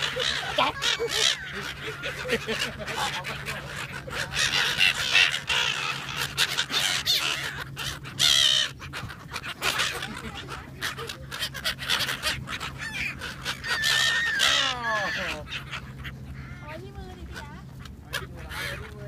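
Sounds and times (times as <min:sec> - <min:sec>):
gulls squawking: 0:00.0 - 0:19.0.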